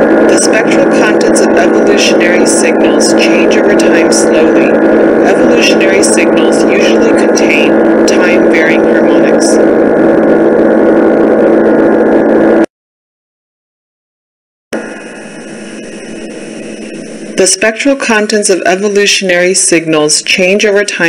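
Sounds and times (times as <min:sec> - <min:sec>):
jet engine noise: 0:00.0 - 0:12.7, 0:14.8 - 0:21.0
low hum: 0:00.0 - 0:12.7, 0:14.8 - 0:19.0
residual engine noise: 0:00.0 - 0:12.7, 0:14.8 - 0:17.6
speech under noise: 0:00.3 - 0:09.6.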